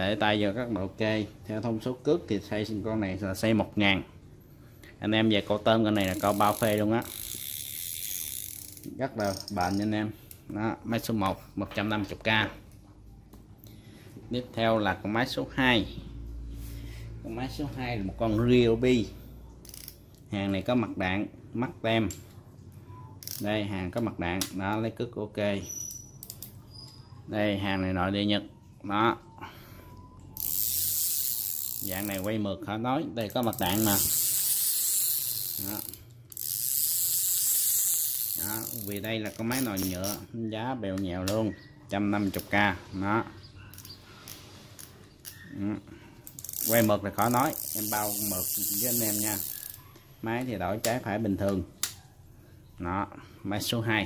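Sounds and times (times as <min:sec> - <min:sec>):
fishing reel ratcheting click: 0:05.9 - 0:10.5, 0:19.6 - 0:20.3, 0:23.2 - 0:24.8, 0:25.9 - 0:26.6, 0:30.4 - 0:32.4, 0:33.2 - 0:40.3, 0:43.7 - 0:45.4, 0:46.2 - 0:51.1.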